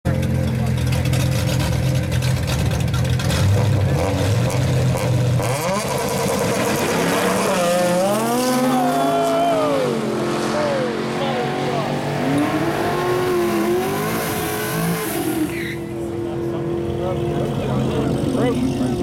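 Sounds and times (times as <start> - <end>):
car engine accelerating hard: 0.1 - 19.0.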